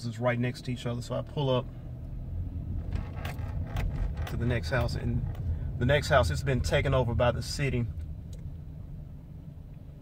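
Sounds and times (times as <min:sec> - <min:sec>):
car engine and road rumble: 0:00.0 - 0:10.0
light clicks or rattles: 0:02.7 - 0:05.6.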